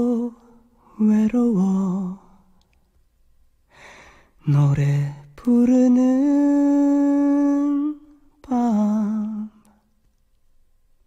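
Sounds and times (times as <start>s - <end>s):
singer inhaling: 3.7s - 4.4s.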